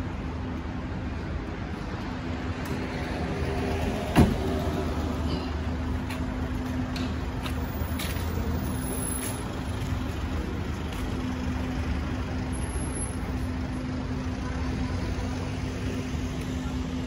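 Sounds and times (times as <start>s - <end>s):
cars rumbling on road: 0.0s - 17.0s.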